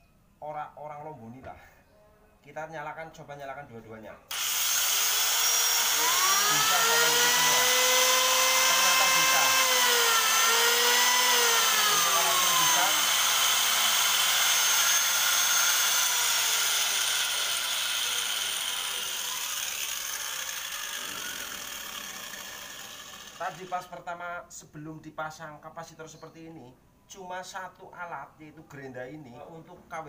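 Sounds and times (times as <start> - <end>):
angle grinder and planer whining: 4.3 - 23.9.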